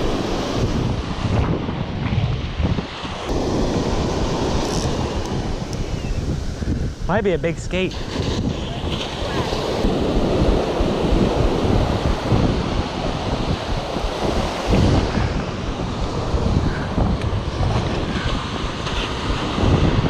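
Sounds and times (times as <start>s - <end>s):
ocean surf breaking: 0.0s - 20.0s
wind buffeting microphone: 0.0s - 20.0s.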